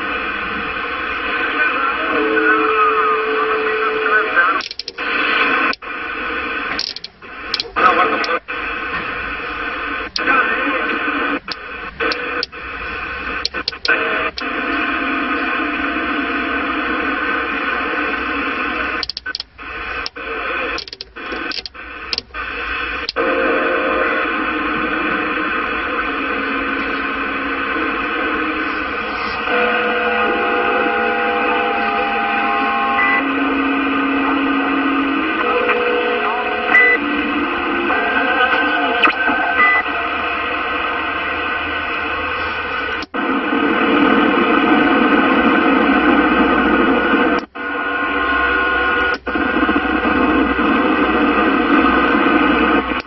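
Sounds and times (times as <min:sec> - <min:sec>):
faint unintelligible radio voices: 0:00.0 - 0:53.0
radio static hiss: 0:00.0 - 0:53.0.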